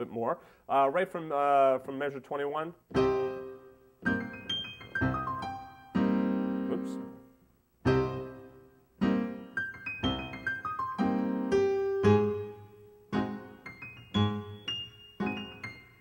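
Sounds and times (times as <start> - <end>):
piano played slowly: 2.9 - 16.0.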